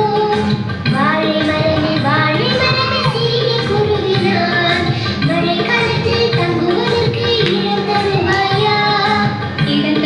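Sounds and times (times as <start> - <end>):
instrumental accompaniment: 0.0 - 10.0
high child-like singing voice: 1.4 - 4.9.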